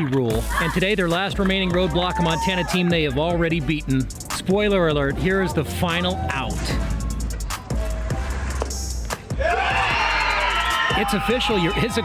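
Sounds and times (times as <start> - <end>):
music with steady low beat: 0.3 - 12.0
crowd cheering and screaming: 1.9 - 3.1, 5.8 - 8.3, 9.4 - 12.0.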